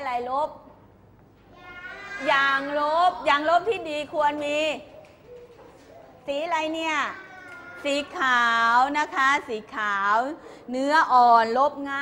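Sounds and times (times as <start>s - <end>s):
woman speaking: 0.0s - 0.8s, 2.2s - 4.9s, 6.2s - 7.2s, 7.8s - 12.0s.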